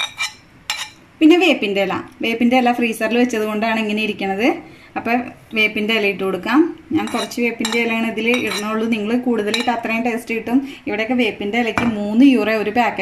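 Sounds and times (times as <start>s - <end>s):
spoon scraping metal bowl: 0.0s - 1.0s, 7.0s - 9.8s.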